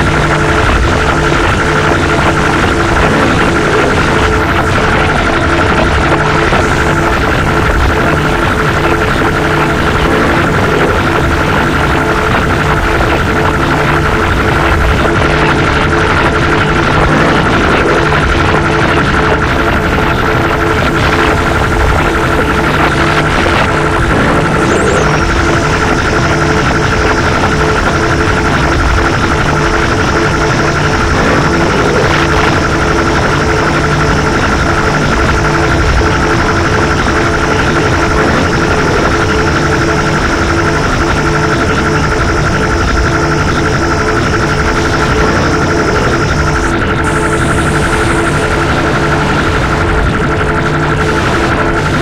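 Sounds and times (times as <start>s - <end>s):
dense noise music: 0.0s - 52.0s
steady droning tones: 0.0s - 52.0s.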